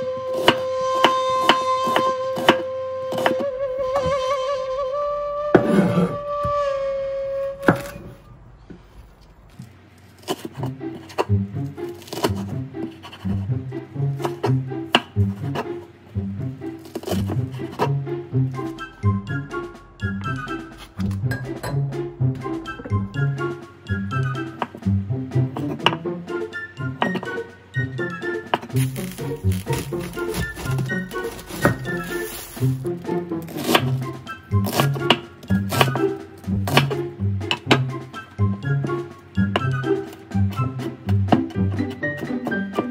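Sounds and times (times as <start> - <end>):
held flute-like note: 0.0 - 8.4
knife chopping on wooden board: 0.4 - 3.4, 12.0 - 13.2, 14.2 - 15.7, 16.9 - 18.0, 28.6 - 32.2, 33.5 - 37.9
background music with bouncing bass: 17.1 - 42.9.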